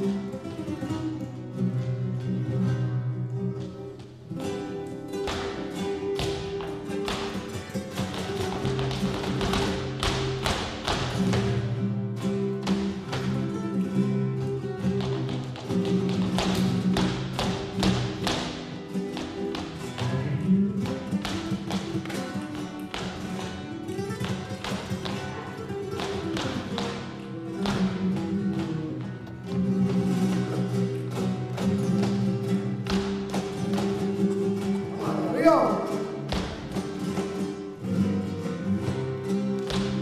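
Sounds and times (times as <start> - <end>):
flamenco guitar playing: 0.0 - 40.0
flamenco shoe strikes on stage: 4.4 - 35.0, 35.7 - 37.8, 38.7 - 40.0.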